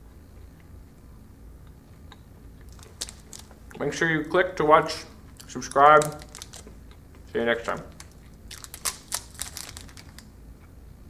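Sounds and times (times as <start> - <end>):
granola bar crunching: 2.6 - 3.7, 5.4 - 7.0, 7.6 - 10.3
plastic wrapper crinkling: 2.7 - 3.7, 5.4 - 6.8, 7.5 - 10.3.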